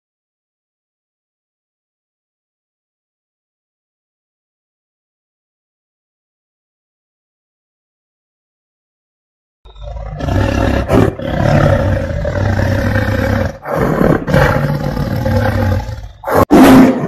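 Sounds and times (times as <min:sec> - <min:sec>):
tiger roaring: 0:09.7 - 0:17.0.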